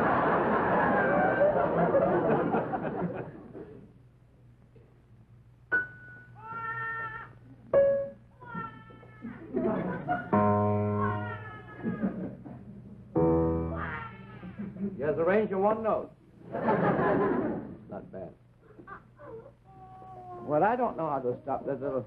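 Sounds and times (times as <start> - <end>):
comic baby crying wails: 6.4 - 7.4, 8.4 - 9.6, 10.7 - 12.2, 13.6 - 14.6, 18.9 - 20.5
loud piano chords: 10.3 - 11.4, 13.2 - 14.0.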